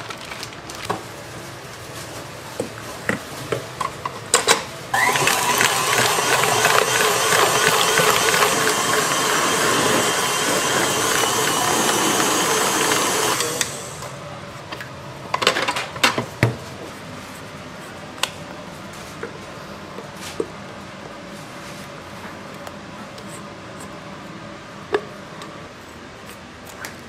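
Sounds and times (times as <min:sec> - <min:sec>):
stand mixer motor running: 0:05.0 - 0:14.1.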